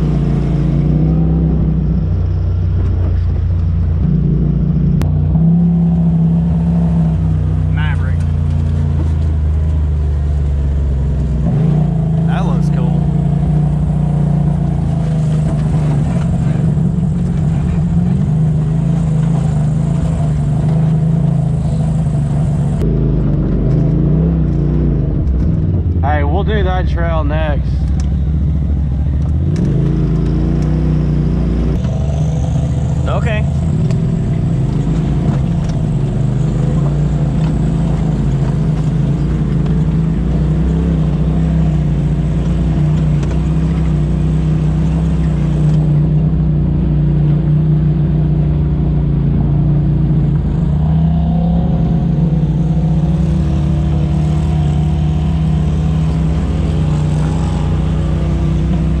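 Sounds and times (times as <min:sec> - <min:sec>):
drivetrain and tyre noise: 0:00.0 - 0:59.0
vehicle engine running steadily: 0:00.0 - 0:59.0.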